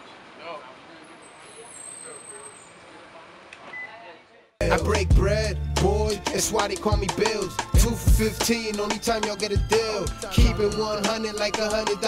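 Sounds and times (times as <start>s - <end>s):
traffic noise: 0.0s - 7.6s.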